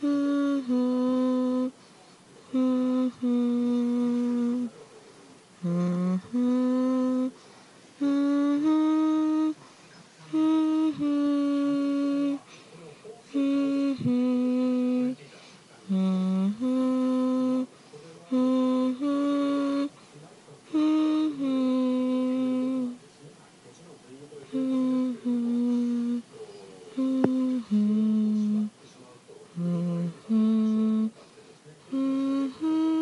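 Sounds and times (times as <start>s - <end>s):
person humming a lullaby tune: 0.0s - 1.8s, 2.5s - 4.8s, 5.6s - 7.4s, 8.0s - 12.5s, 13.3s - 15.2s, 15.9s - 17.7s, 18.3s - 20.0s, 20.7s - 23.0s, 24.5s - 26.2s, 26.9s - 28.8s, 29.6s - 31.2s, 31.8s - 33.0s.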